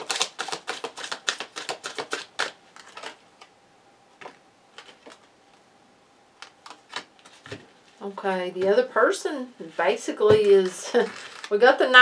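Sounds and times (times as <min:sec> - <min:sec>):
cards being shuffled: 0:00.0 - 0:03.2, 0:04.2 - 0:05.3, 0:06.4 - 0:07.6, 0:10.4 - 0:11.6.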